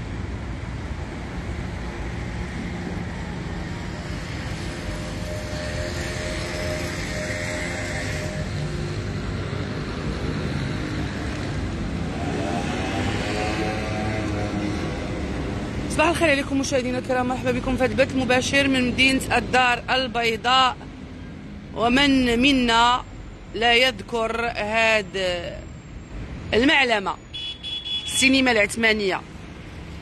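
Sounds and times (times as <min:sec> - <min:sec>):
passing vehicle engine: 0:00.0 - 0:18.5
street traffic noise: 0:00.0 - 0:30.0.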